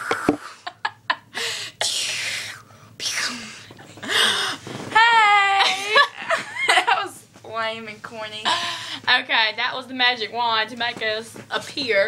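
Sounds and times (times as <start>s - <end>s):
girl whispering: 2.4s - 3.7s.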